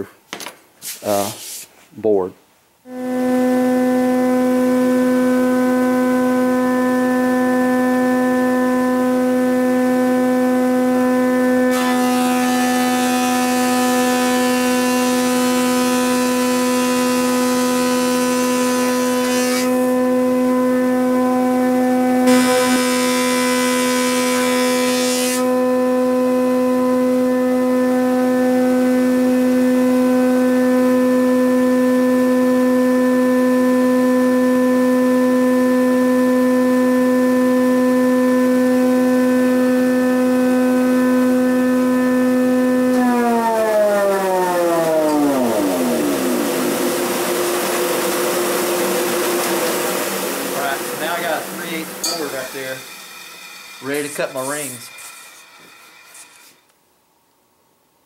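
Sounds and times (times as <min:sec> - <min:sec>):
steady hum and hiss: 0:00.0 - 0:02.9, 0:46.2 - 0:58.0
thickness planer whining: 0:02.9 - 0:56.7
planer cutting board: 0:03.2 - 0:26.2, 0:42.2 - 0:56.7
motor winding down: 0:42.1 - 0:56.7.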